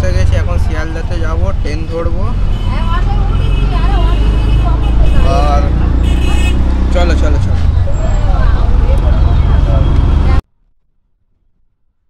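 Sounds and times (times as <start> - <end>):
auto-rickshaw engine running: 0.0 - 10.4.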